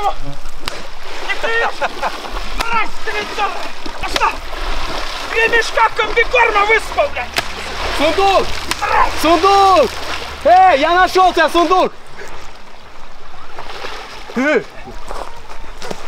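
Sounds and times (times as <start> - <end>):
pole whipping water: 0.0 - 10.6, 13.5 - 14.7
water splashing: 0.0 - 16.0
man yelling: 1.2 - 1.9, 2.6 - 4.5, 5.3 - 7.3, 8.0 - 11.9.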